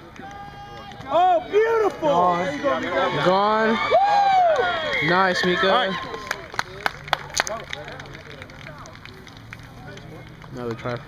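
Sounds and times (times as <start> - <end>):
distant people calling and talking: 0.0 - 11.0.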